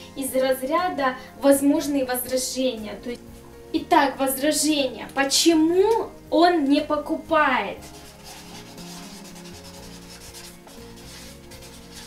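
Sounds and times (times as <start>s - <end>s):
marker squeaking on paper: 7.8s - 12.0s.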